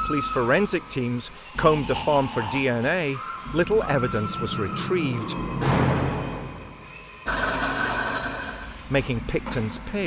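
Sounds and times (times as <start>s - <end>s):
narration: 0.0s - 6.2s.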